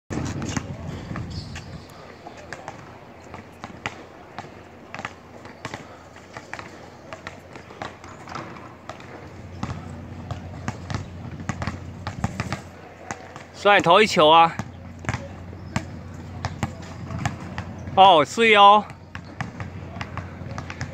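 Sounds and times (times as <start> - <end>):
basketballs bouncing on hard court: 0.1 - 20.9.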